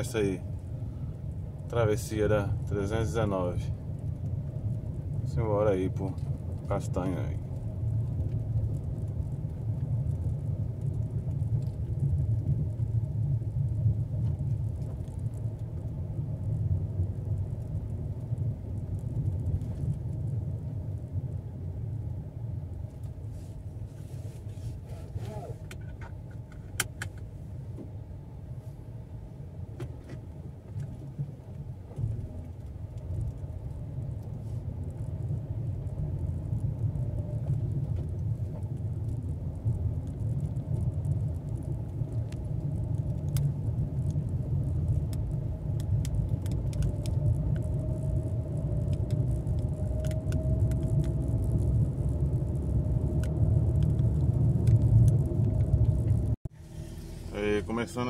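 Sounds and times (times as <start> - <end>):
car engine and tyre rumble: 0.0 - 58.0
faint engine whine: 0.0 - 58.0.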